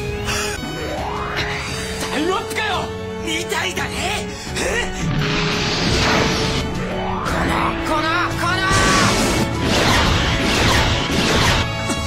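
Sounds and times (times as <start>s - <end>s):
loud background music: 0.0s - 12.0s.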